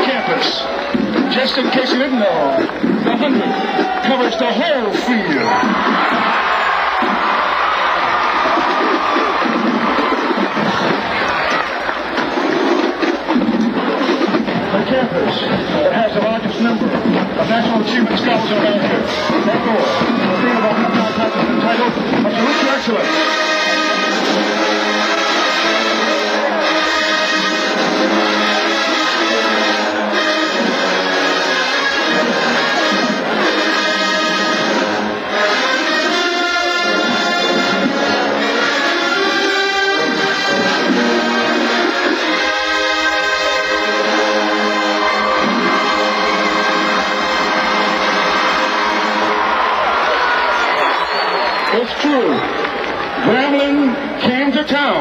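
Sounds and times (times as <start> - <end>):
marching band brass playing: 0.0 - 51.7.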